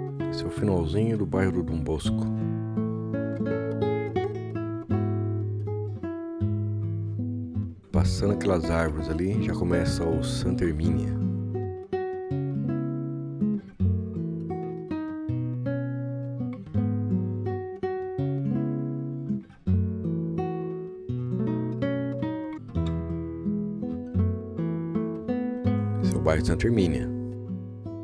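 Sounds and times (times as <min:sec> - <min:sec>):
acoustic guitar plucking: 0:00.0 - 0:28.0.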